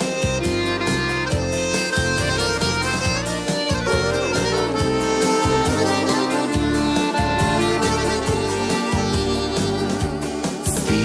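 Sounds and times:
bass line and beat: 0:00.0 - 0:11.0
button accordion melody: 0:00.0 - 0:11.0.

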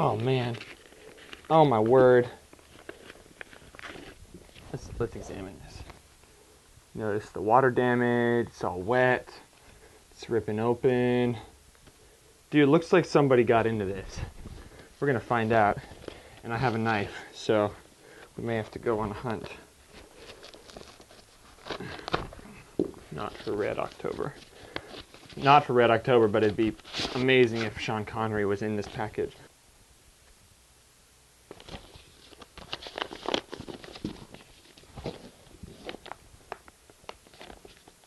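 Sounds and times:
paper envelope rustling: 0:00.0 - 0:06.0, 0:18.1 - 0:27.8, 0:31.5 - 0:38.0.

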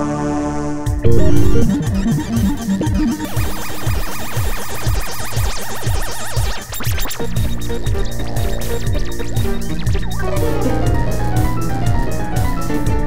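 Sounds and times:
falling bass sweeps: 0:01.0 - 0:03.4
fast warbling high synth line: 0:01.0 - 0:06.8
electronic synthesizer music: 0:01.0 - 0:07.2.

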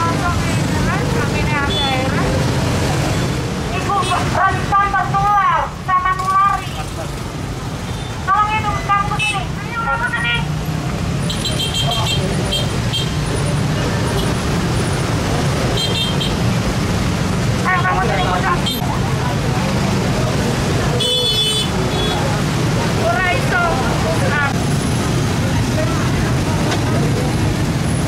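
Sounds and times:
low rumble of roadside traffic: 0:00.0 - 0:28.0.

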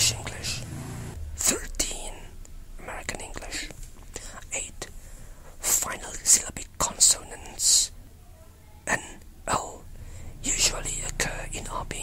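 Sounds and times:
person whispering: 0:00.0 - 0:00.7, 0:01.4 - 0:04.9, 0:05.5 - 0:07.9, 0:08.9 - 0:12.0.

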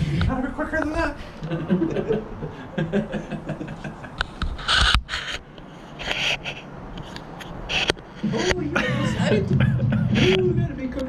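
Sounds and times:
camera handling rubbing: 0:04.2 - 0:08.1
short hissy bursts: 0:04.6 - 0:05.4.

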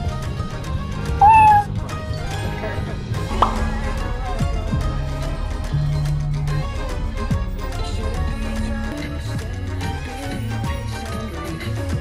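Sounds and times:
background music: 0:00.0 - 0:12.0
high-pitched meow-like cry: 0:01.2 - 0:01.7.

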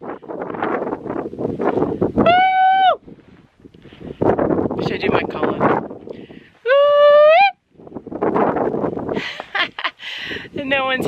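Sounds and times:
woman whooping: 0:02.2 - 0:03.0, 0:06.6 - 0:07.6
laughter: 0:09.2 - 0:10.0.

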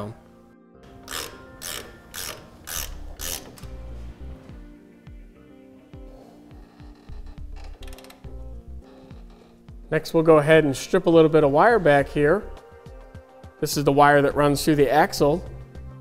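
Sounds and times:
ratchet wrench clicking: 0:01.0 - 0:03.7.

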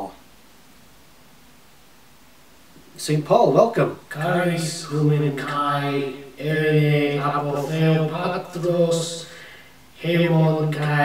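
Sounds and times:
man speaking in chant-like monotone: 0:03.0 - 0:11.0.

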